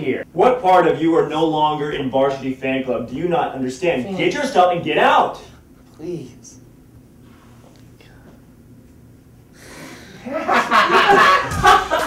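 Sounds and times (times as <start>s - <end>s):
steady low hum: 0.0s - 12.0s
faint whisper: 7.8s - 8.5s.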